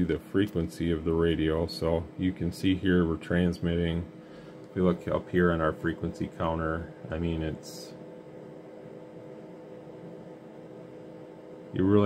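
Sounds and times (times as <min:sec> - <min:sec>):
low equipment hum: 0:00.0 - 0:12.0.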